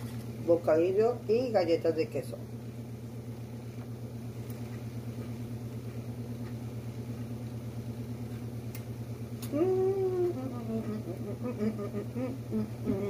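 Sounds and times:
low motor hum: 0.0 - 13.0.

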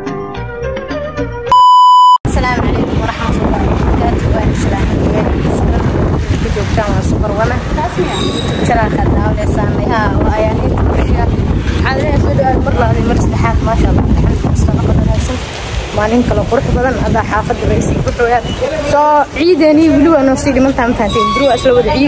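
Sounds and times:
woman talking: 2.3 - 22.0.

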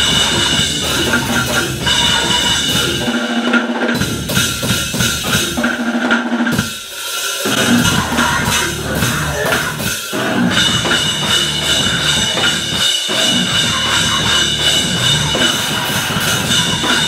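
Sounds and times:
electronic backing: 0.0 - 3.7, 7.5 - 17.0
drum kit played fast: 0.0 - 17.0.

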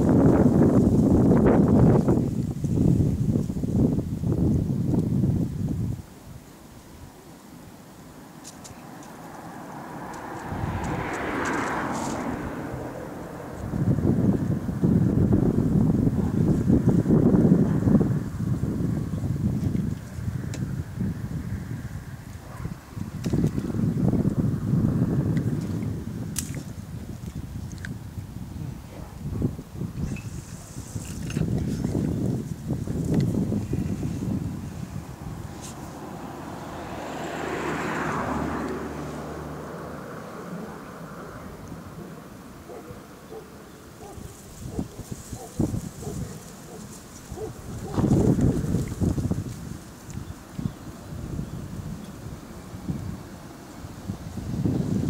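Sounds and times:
wind buffeting microphone: 0.0 - 7.2, 8.8 - 55.0.

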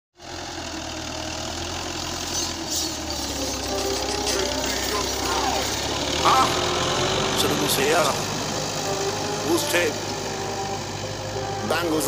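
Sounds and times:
tractor diesel engine running: 0.2 - 12.0
person speaking: 3.8 - 8.5.

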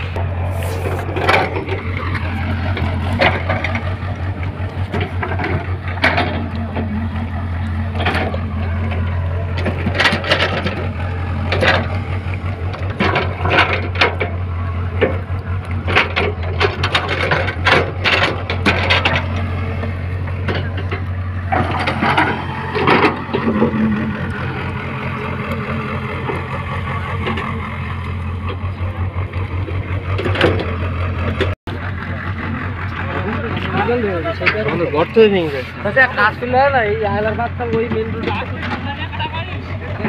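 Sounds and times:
engine droning: 0.0 - 40.0.

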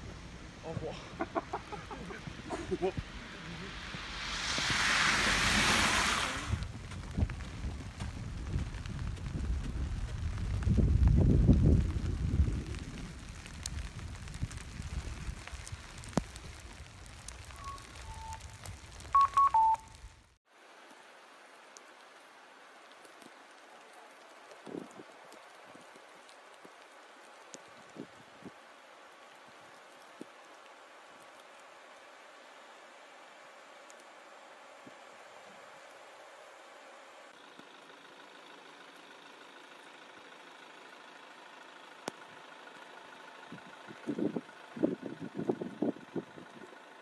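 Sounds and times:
low rumble: 0.0 - 19.1
rushing swell of noise: 1.5 - 6.8
two-tone electronic beeps: 19.1 - 19.9.

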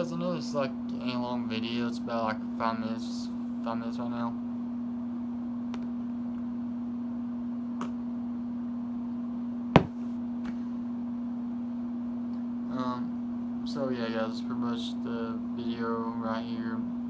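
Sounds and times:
steady hum: 0.0 - 17.0
sharp knock on microphone: 9.8 - 10.0.

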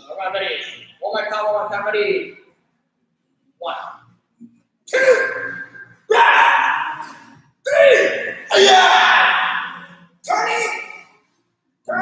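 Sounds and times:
people shouting: 4.9 - 11.0.

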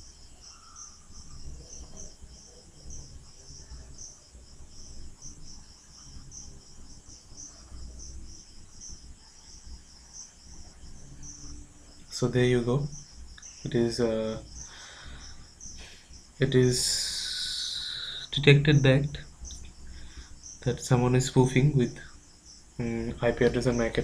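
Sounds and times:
insect chirping: 0.0 - 24.0.

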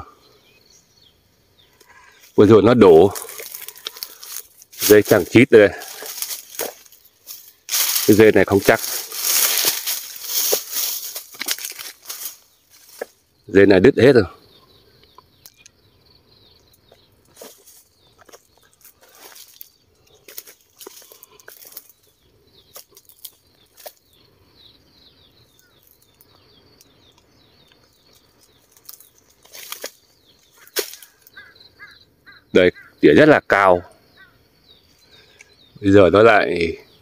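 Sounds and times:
brushing through undergrowth: 2.9 - 13.2, 17.3 - 24.1, 27.8 - 31.4
footsteps in dry leaves: 2.9 - 13.2, 17.3 - 24.1, 28.0 - 31.4.

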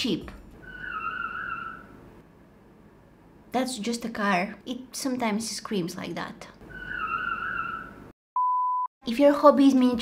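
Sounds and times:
high-pitched censor bleep: 8.4 - 8.9.

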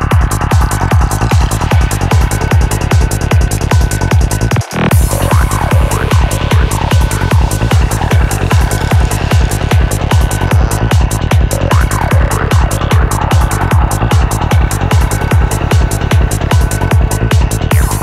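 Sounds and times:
bass notes: 0.0 - 18.0
kick drum: 0.0 - 18.0.

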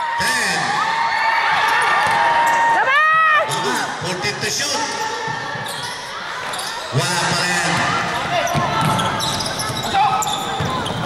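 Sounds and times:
basketball bouncing on court: 7.6 - 11.0.

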